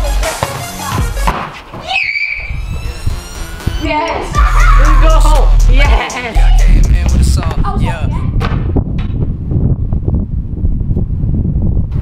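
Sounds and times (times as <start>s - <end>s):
wind on microphone: 6.6s - 12.0s.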